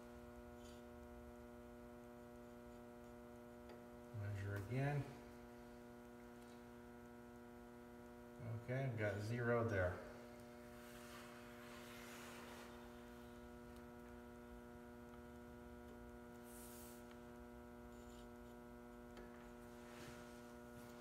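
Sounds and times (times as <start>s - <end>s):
steady electrical hum: 0.0s - 21.0s.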